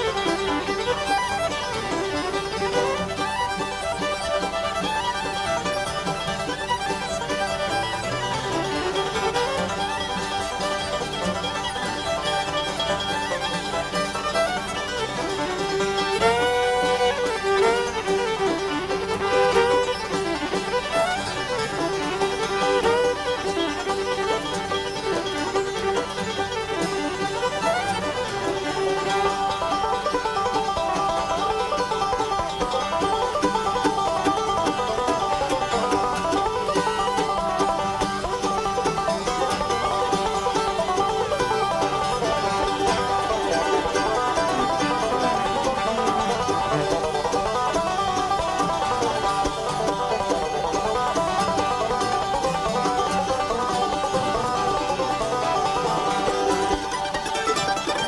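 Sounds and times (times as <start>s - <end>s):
banjo: 0.0s - 58.0s
fiddle melody: 0.0s - 58.0s
mandolin: 0.0s - 58.0s
acoustic guitar: 0.2s - 58.0s.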